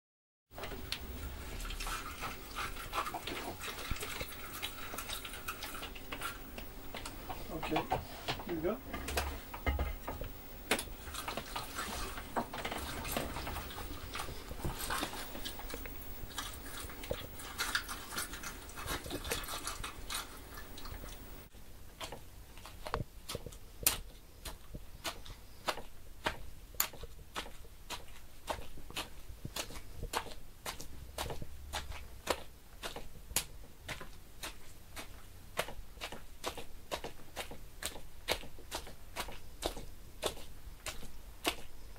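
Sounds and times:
crunches and clicks like chewing: 0.6 - 41.9.

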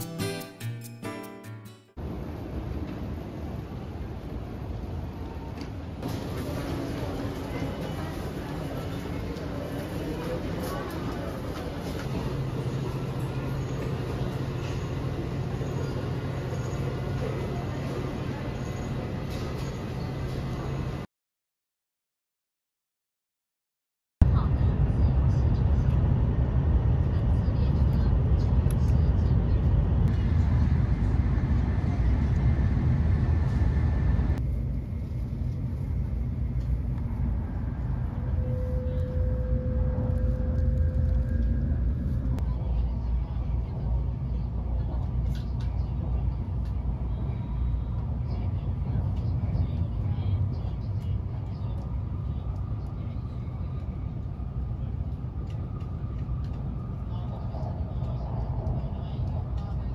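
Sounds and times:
train rumble inside cabin: 2.0 - 21.0, 24.2 - 59.9.

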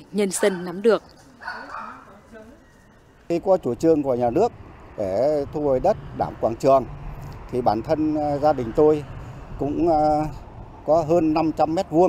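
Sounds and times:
faint dog barking: 1.4 - 2.2.

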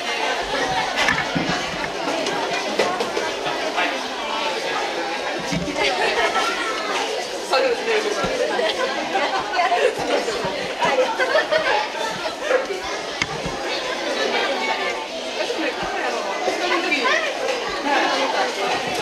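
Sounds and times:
crowd chatter in large hall: 0.0 - 19.0.

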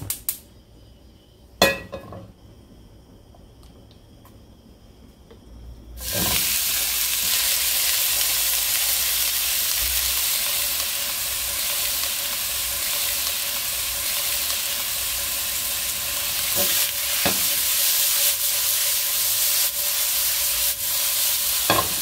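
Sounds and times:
chicken sizzling in a frying pan: 6.0 - 22.0.

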